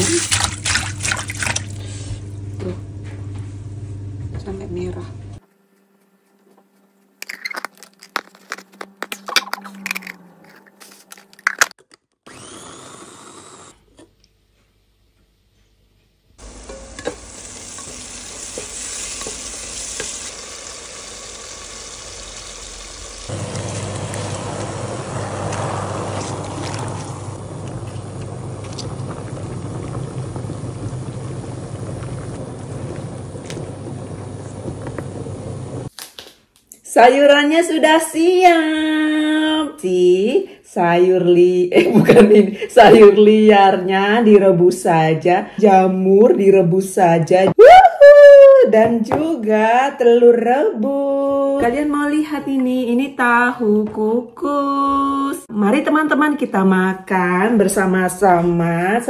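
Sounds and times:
water running into metal pot: 16.4s - 35.1s.

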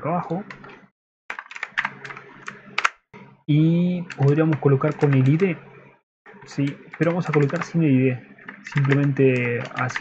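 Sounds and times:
computer keyboard keys clicking: 1.3s - 3.0s, 4.1s - 5.5s, 6.6s - 7.8s, 8.4s - 10.0s.

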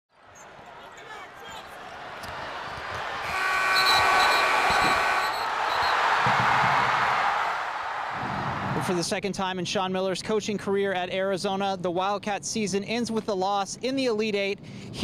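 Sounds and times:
crowd cheering: 0.2s - 9.0s
game-ending horn: 3.2s - 5.4s.

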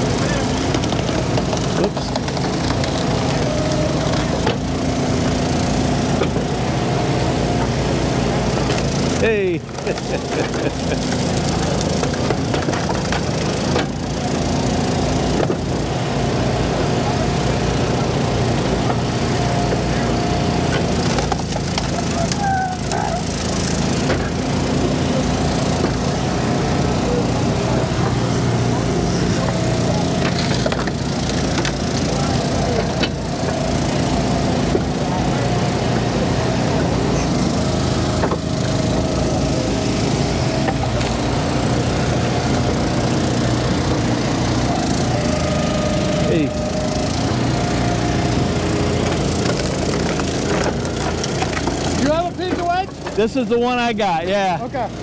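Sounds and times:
wood splitting cracks: 0.0s - 5.3s, 9.7s - 14.2s, 20.7s - 22.5s, 30.1s - 32.1s, 48.3s - 53.2s
log splitter engine running: 0.0s - 55.0s
high whine: 27.1s - 52.7s.

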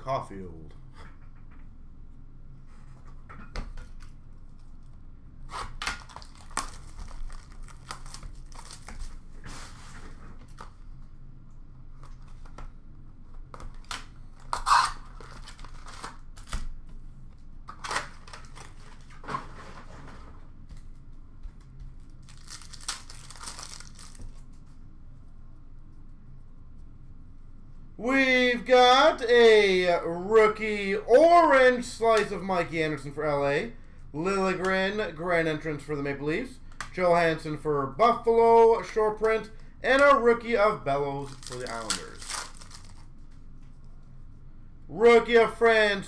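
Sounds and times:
card packs being torn open: 5.5s - 9.2s, 13.6s - 16.7s, 17.7s - 19.2s, 22.0s - 24.5s, 41.2s - 43.1s
wrappers crinkling: 6.0s - 9.3s, 22.0s - 24.7s, 41.2s - 43.2s.

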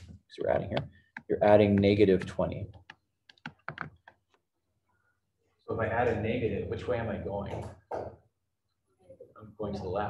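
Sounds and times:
stylus tapping on touchscreen: 0.0s - 4.4s.

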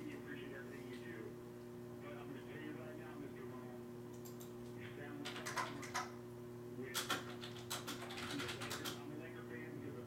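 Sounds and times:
low electrical hum: 0.0s - 10.0s.

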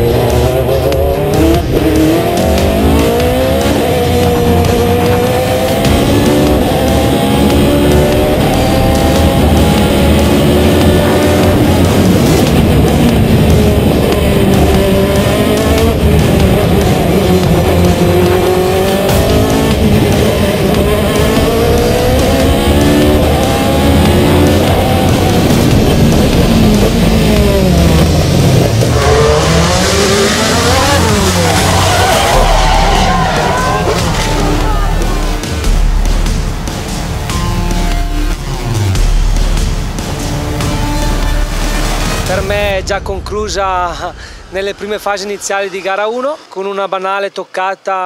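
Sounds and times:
racing engine at full throttle: 0.0s - 46.9s.

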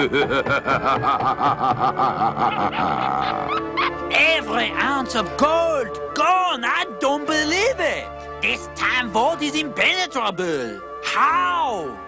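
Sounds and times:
cartoon cat snickering laugh: 0.0s - 3.9s
background music: 0.0s - 12.0s.

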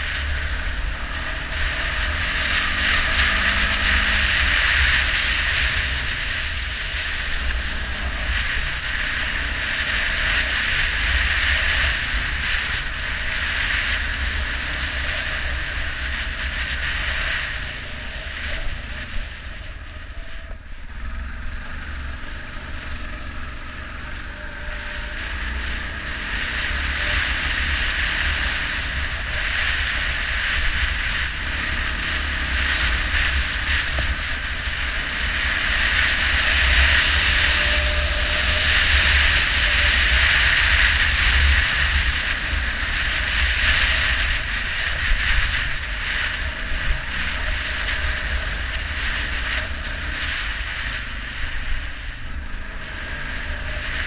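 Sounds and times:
atv engine and tyre noise: 0.0s - 54.0s.

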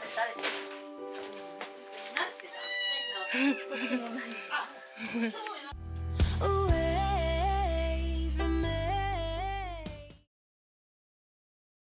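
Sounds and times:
background music: 0.0s - 10.3s
cat meowing: 2.5s - 3.9s.

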